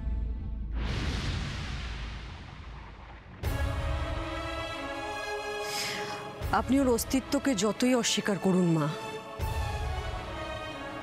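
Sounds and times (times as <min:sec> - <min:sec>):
booming hit: 0:00.6 - 0:04.2.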